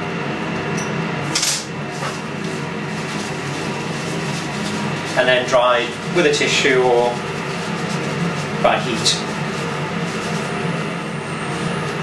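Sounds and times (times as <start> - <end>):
steady machine hum: 0.0 - 12.0
paper tissue crinkling: 1.9 - 12.0.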